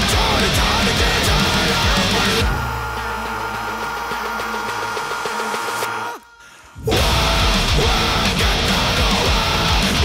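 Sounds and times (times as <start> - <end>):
heavy metal band: 0.0 - 10.0.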